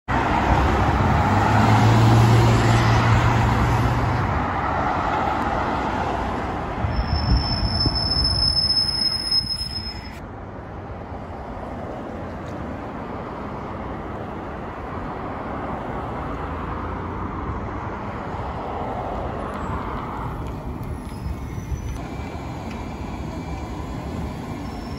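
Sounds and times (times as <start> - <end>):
bus passing with high whine: 0.1 - 24.9
road traffic passing: 0.1 - 24.9.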